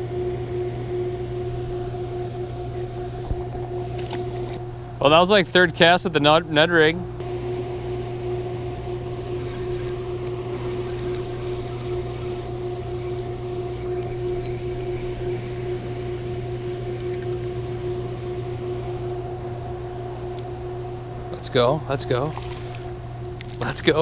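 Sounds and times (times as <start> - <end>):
machine hum with steady tone: 0.0 - 24.0.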